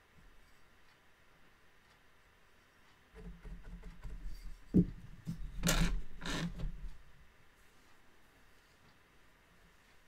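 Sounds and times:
tapestry beater knock: 3.2s - 7.0s.

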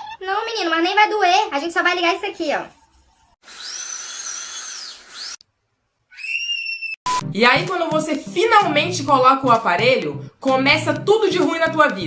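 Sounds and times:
dental drill whining: 3.4s - 5.4s.

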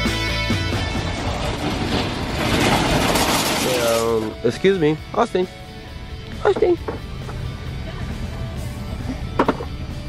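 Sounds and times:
shopping cart rattling on pavement: 0.6s - 4.9s.

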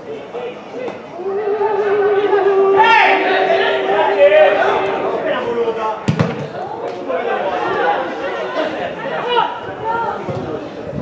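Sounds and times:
voices calling out: 0.0s - 10.7s.

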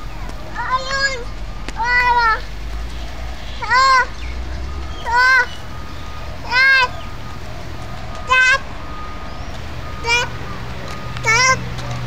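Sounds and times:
squeaker shoes squeaking: 0.0s - 12.0s.

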